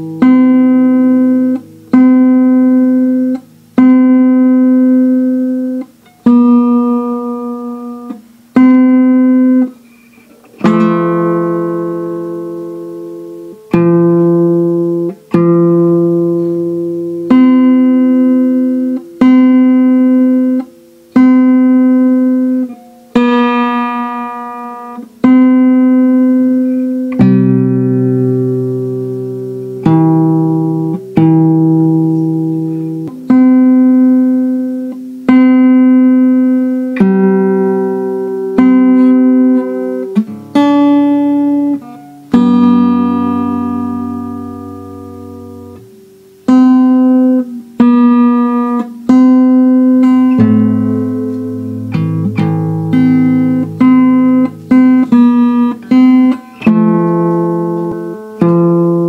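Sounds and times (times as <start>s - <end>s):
fingerpicked acoustic guitar: 0.0s - 59.0s.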